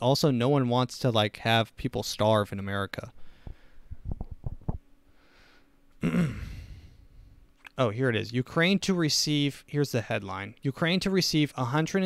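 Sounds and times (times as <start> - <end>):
man speaking: 0.0 - 3.2, 7.7 - 12.0
man sighing: 6.0 - 7.3.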